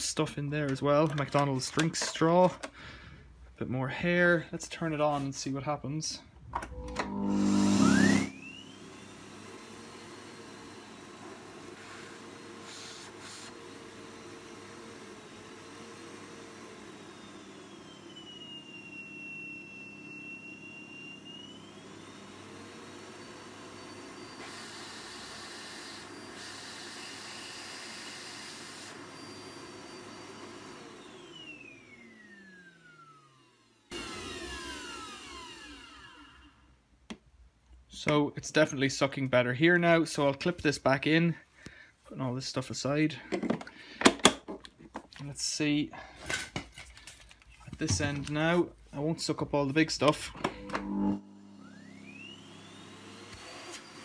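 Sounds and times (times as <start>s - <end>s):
vacuum cleaner motor whine: 6.6s - 36.7s, 46.3s - 48.6s, 49.3s - 54.0s.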